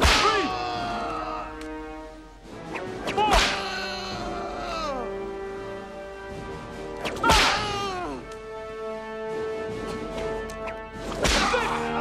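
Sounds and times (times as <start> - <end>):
whip crack: 0.0 - 0.5, 2.7 - 3.7, 7.0 - 7.8, 10.5 - 11.8
orchestral score: 0.0 - 12.0.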